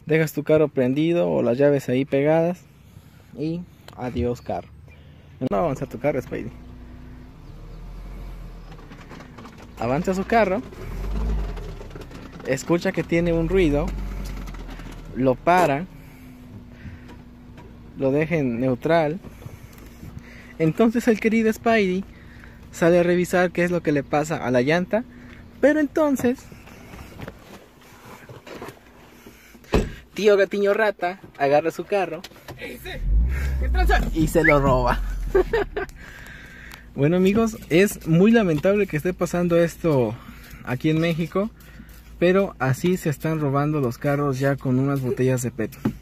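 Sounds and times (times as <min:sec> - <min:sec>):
car engine rumbling: 0:00.0 - 0:46.0
movement sounds: 0:25.1 - 0:30.1.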